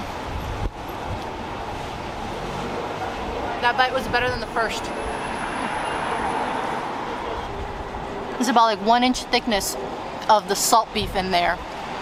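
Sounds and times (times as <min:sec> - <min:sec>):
traffic rumble and hiss: 0:00.0 - 0:12.0.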